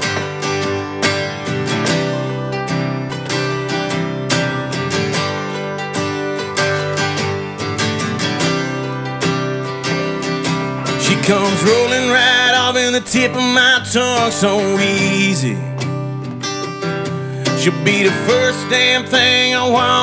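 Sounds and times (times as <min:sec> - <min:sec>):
acoustic bass guitar: 0:00.0 - 0:20.0
strummed acoustic guitars: 0:00.0 - 0:20.0.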